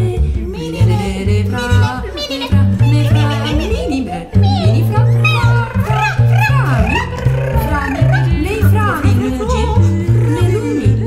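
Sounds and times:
double bass low notes: 0.0s - 11.0s
women singing gliding lines: 0.0s - 11.0s.

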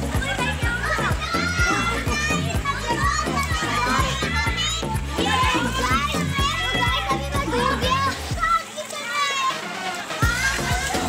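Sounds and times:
background music with steady beat: 0.0s - 8.8s, 9.4s - 11.0s
children shouting and playing: 0.0s - 11.0s.

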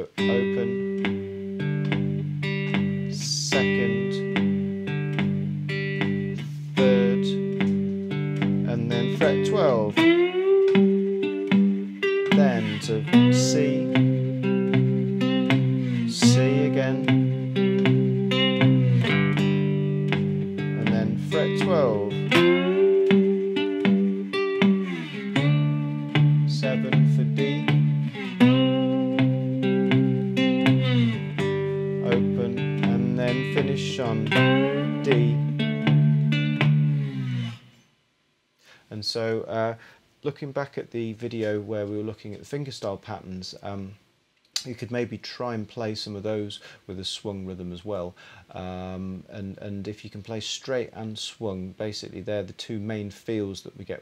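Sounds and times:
finger-picked slide guitar blues: 0.0s - 37.7s.

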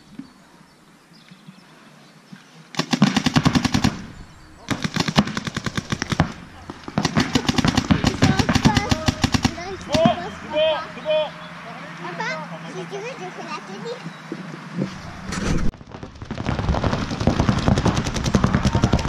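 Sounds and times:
paintball markers firing: 4.7s - 10.2s, 16.8s - 19.0s
voices shouting: 6.1s - 14.7s.

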